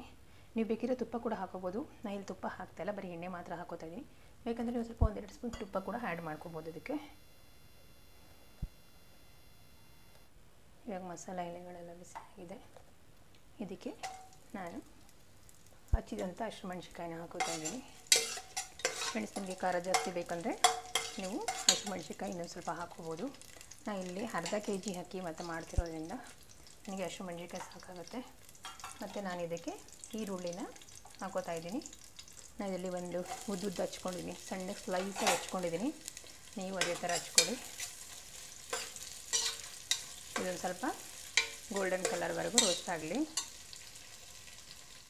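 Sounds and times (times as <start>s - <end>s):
spices sizzling in oil: 0.6s - 10.2s, 13.5s - 45.0s
metal spoon scraping pot: 17.4s - 22.1s, 33.2s - 33.7s, 34.8s - 35.7s, 36.8s - 38.1s, 38.7s - 40.6s, 41.2s - 43.6s.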